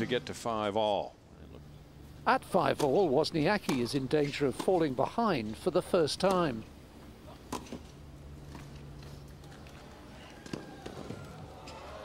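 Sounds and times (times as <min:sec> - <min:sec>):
faint crowd ambience: 0:00.0 - 0:12.0.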